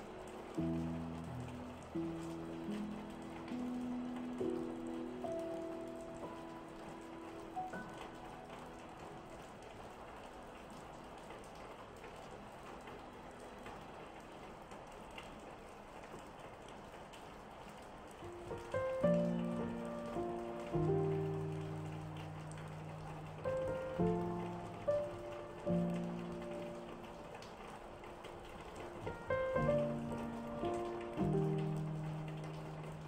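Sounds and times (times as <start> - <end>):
solo piano: 0.0 - 14.2, 18.1 - 33.0
steady rain falling: 0.0 - 33.0.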